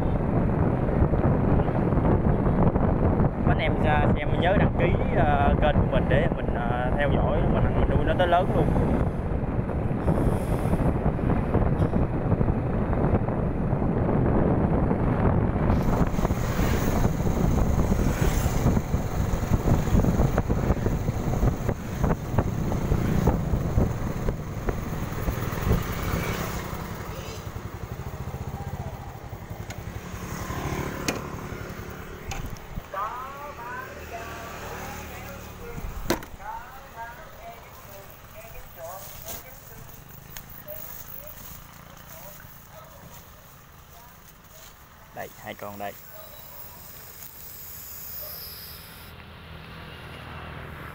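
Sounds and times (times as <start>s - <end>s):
wind rumble on microphone: 0.0s - 46.0s
motorbike engine running: 10.7s - 33.8s.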